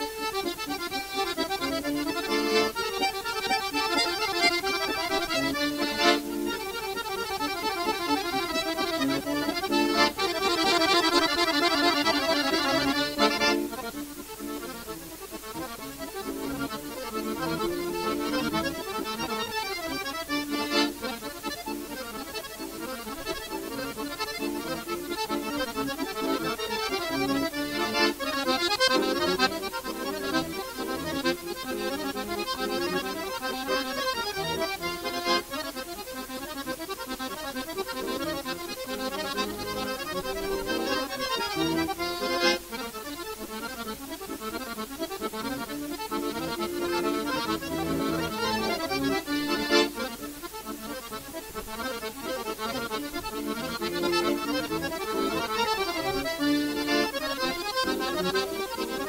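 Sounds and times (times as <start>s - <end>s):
button accordions playing: 0.0s - 59.0s.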